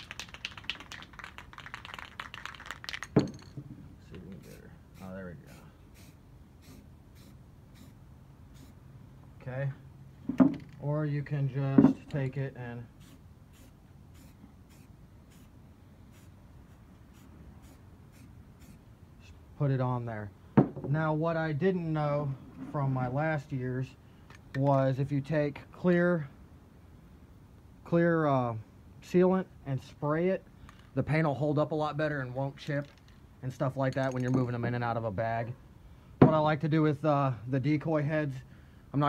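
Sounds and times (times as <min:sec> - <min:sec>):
spray can ball rattling: 0:00.0 - 0:03.6.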